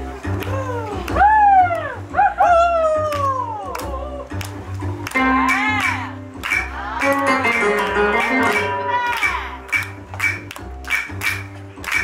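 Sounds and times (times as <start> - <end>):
latin dance music with guitar: 5.0 - 12.0.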